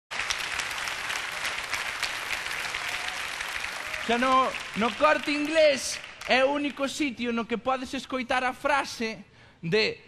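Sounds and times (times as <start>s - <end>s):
audience applauding: 0.1s - 7.0s.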